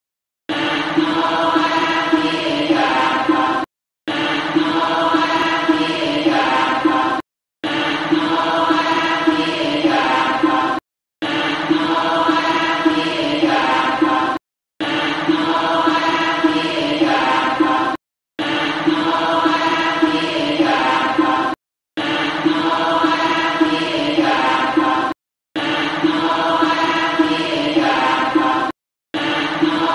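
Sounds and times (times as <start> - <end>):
devotional chanting: 0.5 - 29.9.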